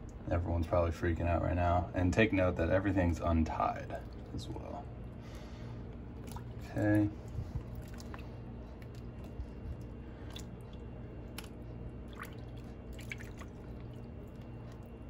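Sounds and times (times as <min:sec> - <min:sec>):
steady low hum: 0:00.0 - 0:15.0
water drips and splashes: 0:02.9 - 0:04.8, 0:06.1 - 0:15.0.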